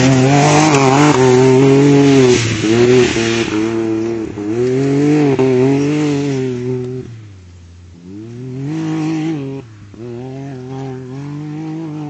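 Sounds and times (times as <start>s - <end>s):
car engine pulling hard: 0.0s - 12.0s.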